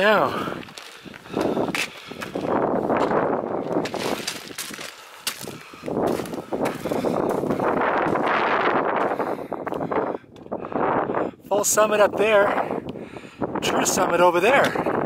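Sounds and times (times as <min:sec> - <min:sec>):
footsteps crunching on scree: 0:00.0 - 0:10.6.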